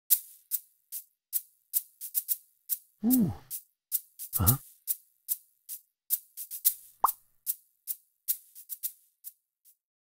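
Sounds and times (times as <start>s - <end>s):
shaker hits: 0.1s - 9.4s.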